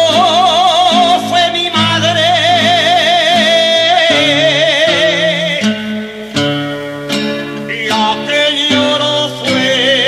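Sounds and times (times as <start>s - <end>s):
acoustic guitar strumming chords: 0.0s - 10.0s
person singing with vibrato: 0.0s - 10.0s.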